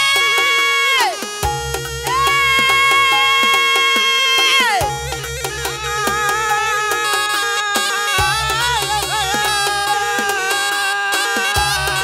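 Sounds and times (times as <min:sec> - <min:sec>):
reedy wind instrument melody: 0:00.0 - 0:12.0
pulsing low beat: 0:01.4 - 0:03.3, 0:04.8 - 0:12.0.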